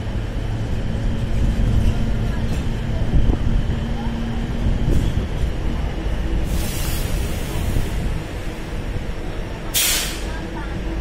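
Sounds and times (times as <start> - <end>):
train running rumble: 0.0 - 11.0
brake air hiss: 6.4 - 8.1, 9.7 - 10.4.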